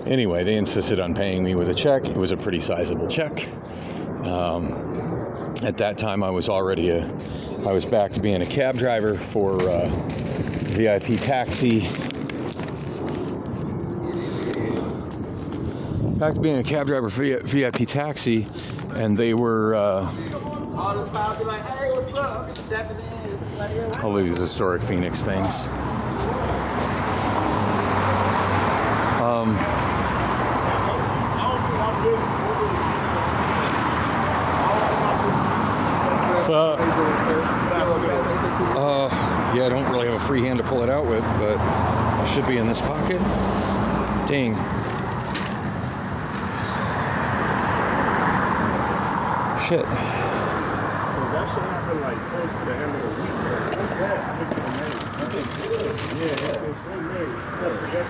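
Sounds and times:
road traffic passing: 0:00.0 - 0:58.0.

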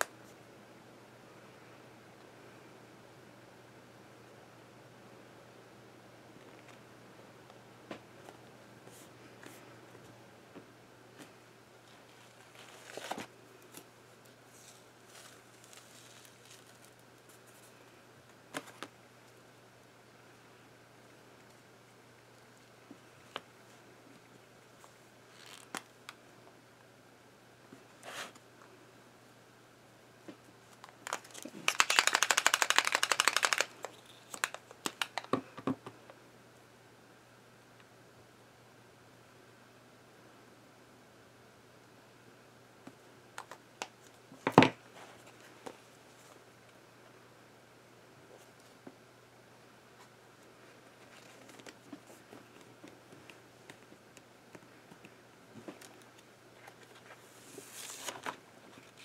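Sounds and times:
paper rustling: 0:11.9 - 0:13.8, 0:55.8 - 0:59.0
paint marker ball rattling: 0:31.7 - 0:35.1.

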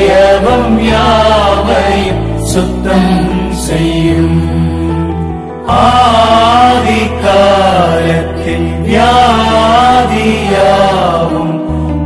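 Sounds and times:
person singing devotional song: 0:00.0 - 0:11.8.

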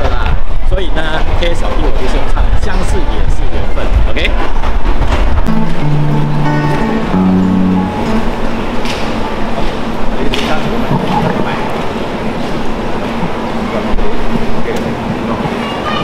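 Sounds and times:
amplifier hiss and hum: 0:05.0 - 0:15.3.

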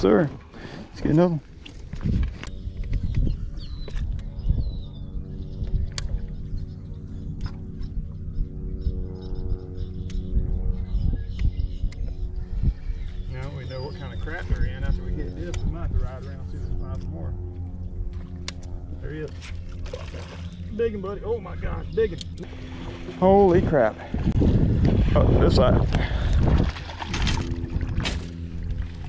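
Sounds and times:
steady low hum: 0:00.0 - 0:29.0
wavering rumble on microphone: 0:00.0 - 0:29.0.

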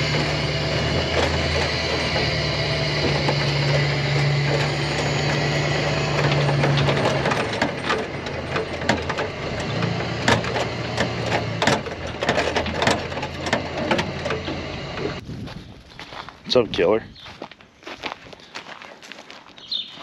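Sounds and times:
rattles and knocks of bouncing rig: 0:00.0 - 0:15.2
truck engine running: 0:00.0 - 0:15.2.

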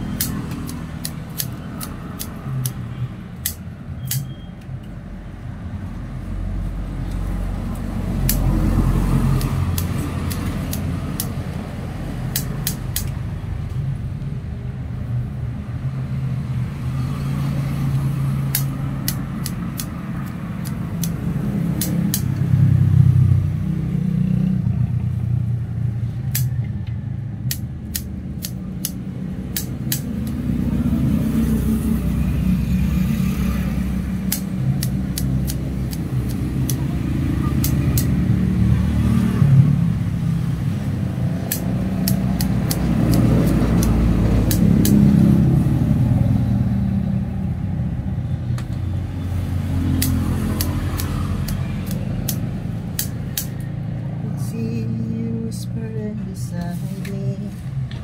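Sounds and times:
road traffic rumble: 0:00.0 - 0:58.0
sharp clicks: 0:00.1 - 0:05.0, 0:07.0 - 0:11.6, 0:12.2 - 0:13.8, 0:17.9 - 0:22.5, 0:26.3 - 0:30.5, 0:34.1 - 0:38.3, 0:41.4 - 0:45.2, 0:49.8 - 0:55.2.

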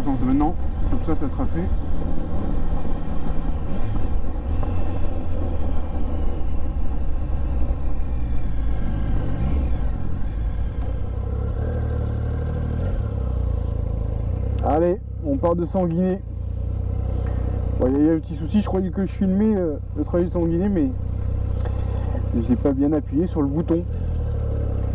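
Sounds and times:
wind rumbling on microphone: 0:00.0 - 0:11.4
motorcycle engine running: 0:00.0 - 0:24.9.

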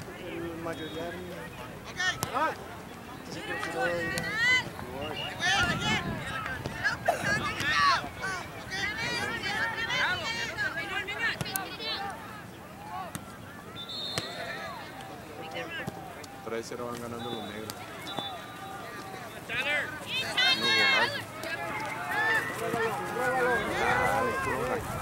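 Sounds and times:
people shouting and calling: 0:03.3 - 0:25.0.

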